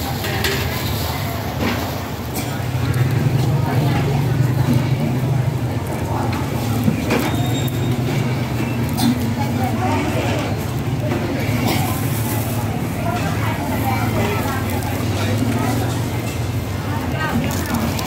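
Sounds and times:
people talking: 0.0s - 18.0s.

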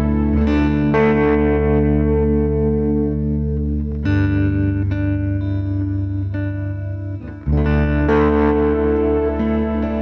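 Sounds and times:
effects-laden guitar chords ringing: 0.0s - 10.0s.

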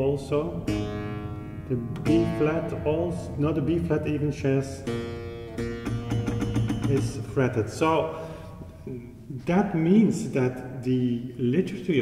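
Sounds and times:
clavichord notes ringing: 0.4s - 7.6s.

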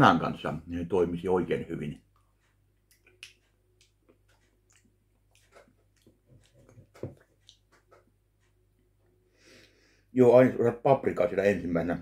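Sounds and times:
mouth smacks and clicks: 2.0s - 8.1s.

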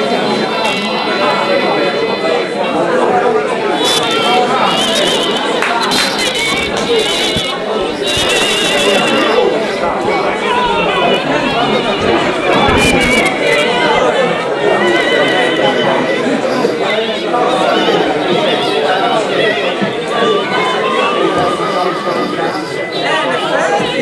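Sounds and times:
crowd chatter: 0.0s - 24.0s.

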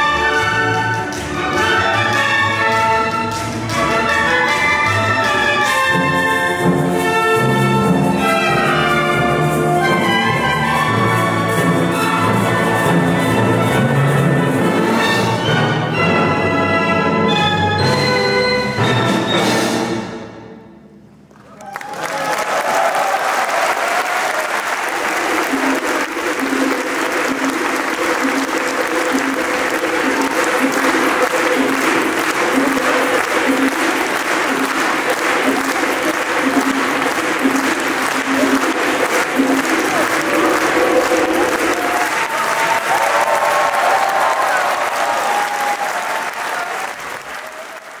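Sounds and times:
audience applauding: 21.3s - 48.0s.

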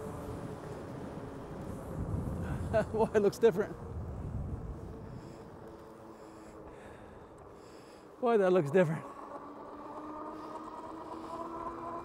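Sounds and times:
electric bike riding rush: 0.0s - 12.0s
faint motor hum: 0.0s - 12.0s.

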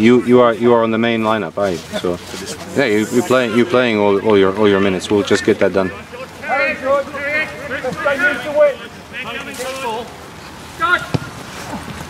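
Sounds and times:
men shouting: 2.6s - 10.2s.

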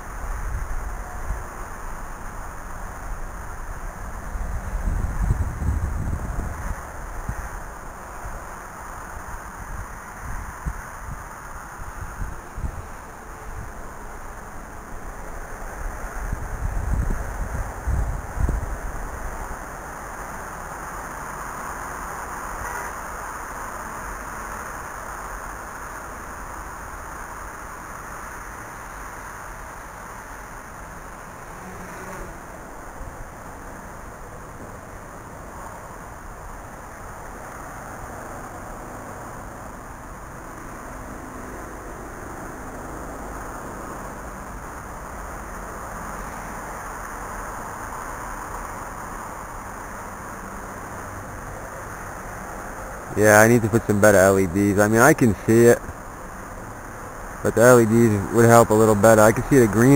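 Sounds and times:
steady outdoor hiss: 0.0s - 59.9s
wind buffeting microphone: 3.1s - 8.4s, 15.8s - 19.5s.

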